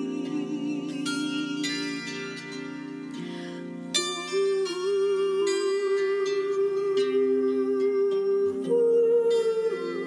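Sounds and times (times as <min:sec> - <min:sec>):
slow harp music: 0:00.0 - 0:10.0.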